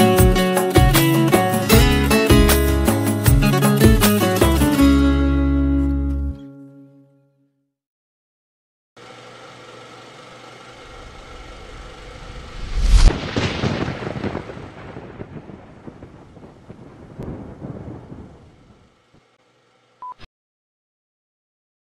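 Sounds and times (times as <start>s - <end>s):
steady drone: 10.8s - 13.1s
noisy tail: 10.9s - 18.9s
loud deep impact: 12.1s - 18.4s.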